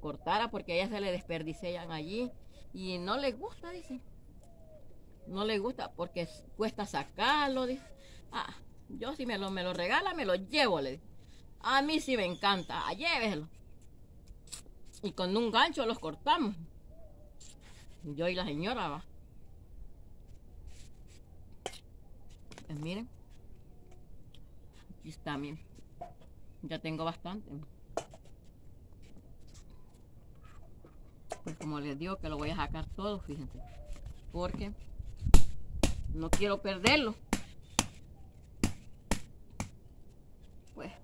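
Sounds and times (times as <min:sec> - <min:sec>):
stone striking a woody pod: 0:35.3 - 0:38.0, 0:38.6 - 0:39.8.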